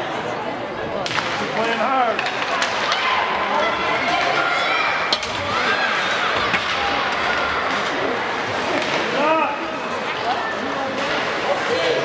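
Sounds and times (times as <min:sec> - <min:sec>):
voices of players and spectators: 0:00.0 - 0:12.0
hockey sticks cracking against puck: 0:01.0 - 0:03.2, 0:04.0 - 0:09.3.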